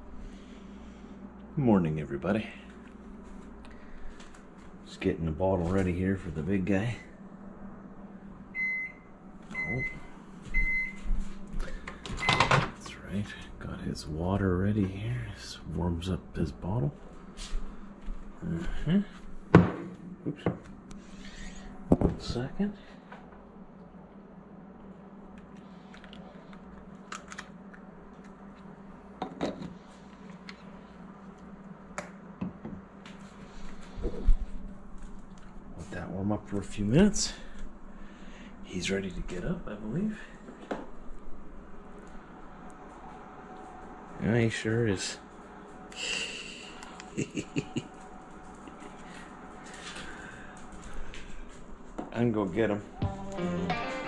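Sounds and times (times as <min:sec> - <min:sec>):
faint steady hum: 0:00.0 - 0:54.0
microwave oven beeping: 0:08.5 - 0:12.8.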